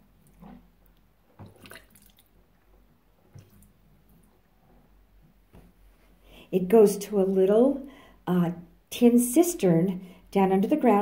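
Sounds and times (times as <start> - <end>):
soft water drips: 0.2 - 4.4
water trickling into sink: 1.4 - 2.4.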